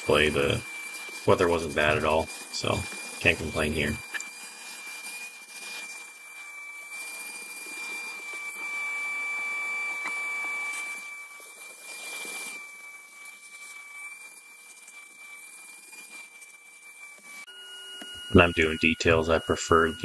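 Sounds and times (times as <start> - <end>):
vacuum cleaner whining: 0.0 - 20.0.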